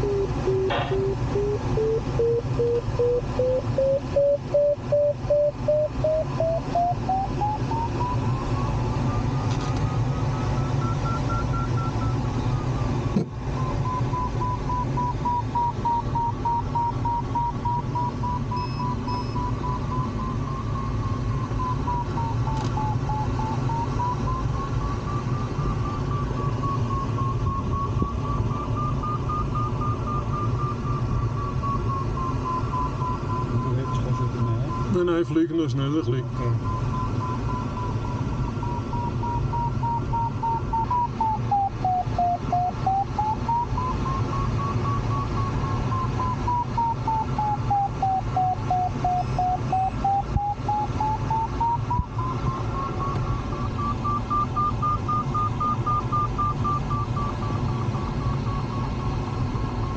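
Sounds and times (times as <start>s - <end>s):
variometer beeping tone: 0.0s - 59.9s.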